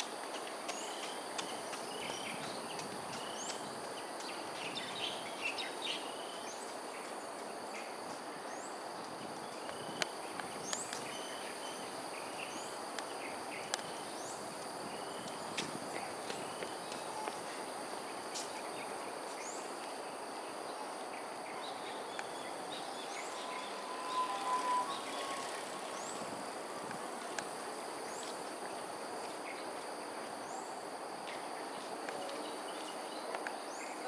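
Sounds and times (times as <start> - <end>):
high-pitched insect drone: 22.0 - 27.2
whistled bird call: 23.0 - 25.8
short rising chirps: 23.2 - 25.9.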